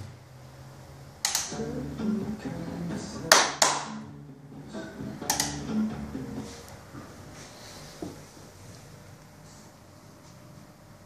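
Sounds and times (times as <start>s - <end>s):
sharp hand claps: 3.3s - 4.0s.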